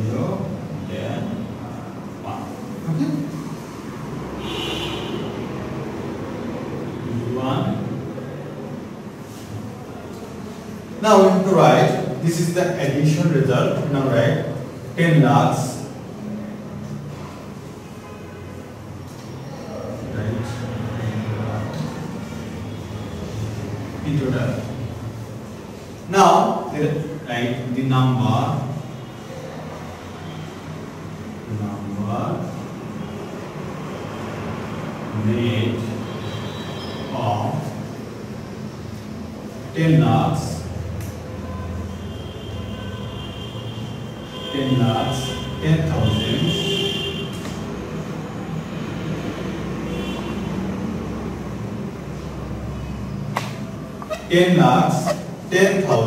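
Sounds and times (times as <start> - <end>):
marker writing on whiteboard: 53.3 - 56.0.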